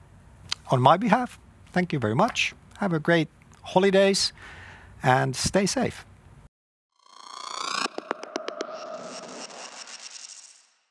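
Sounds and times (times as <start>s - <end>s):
synthesized rising tone: 7.0s - 10.9s.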